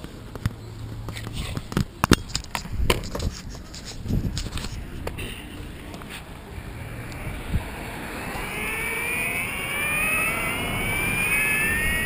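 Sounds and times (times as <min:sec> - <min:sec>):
wheels rumbling on road: 0:00.0 - 0:12.0
electric motor whining: 0:06.4 - 0:12.0.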